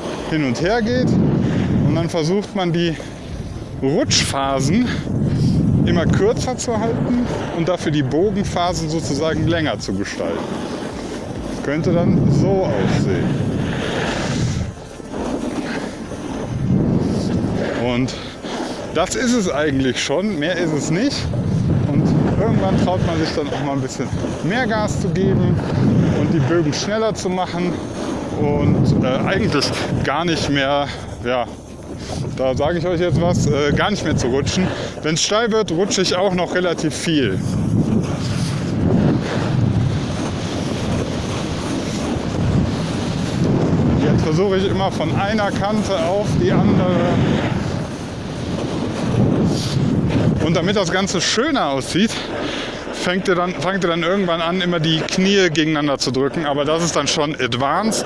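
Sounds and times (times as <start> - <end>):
snowboard scraping on snow: 0.0 - 58.0
wind on microphone: 0.0 - 58.0.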